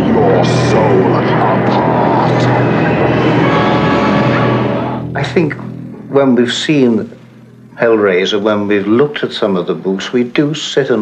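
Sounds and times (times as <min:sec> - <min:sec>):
man speaking: 0:00.0 - 0:03.5, 0:05.2 - 0:07.2
steady low rumble: 0:00.0 - 0:09.8.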